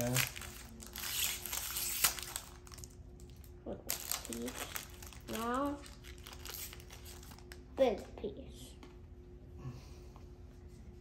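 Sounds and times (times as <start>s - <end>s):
wrapper crinkling: 0.0s - 7.6s.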